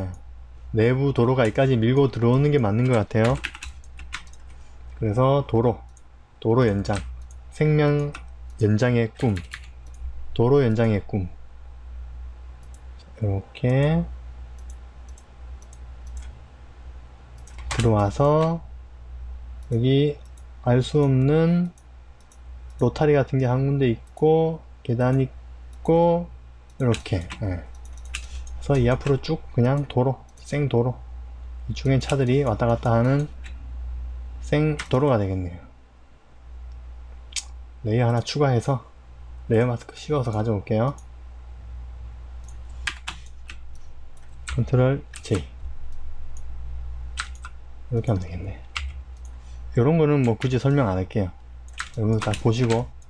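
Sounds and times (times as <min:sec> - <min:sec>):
man talking: 0:00.0 - 0:03.5, 0:05.0 - 0:05.8, 0:06.4 - 0:09.6, 0:10.3 - 0:11.4, 0:13.1 - 0:14.1, 0:17.7 - 0:18.7, 0:19.7 - 0:21.7, 0:22.8 - 0:27.7, 0:28.6 - 0:31.0, 0:31.7 - 0:33.4, 0:34.4 - 0:35.7, 0:37.8 - 0:38.9, 0:39.5 - 0:41.0, 0:44.5 - 0:45.6, 0:47.9 - 0:48.7, 0:49.7 - 0:51.4, 0:52.0 - 0:52.9
steady low hum: 0:00.0 - 0:53.0
computer mouse click: 0:02.8 - 0:04.6, 0:12.6 - 0:12.9, 0:14.6 - 0:16.4, 0:19.6 - 0:22.8, 0:26.7 - 0:30.5, 0:36.7 - 0:38.3, 0:47.2 - 0:49.4, 0:51.7 - 0:53.0.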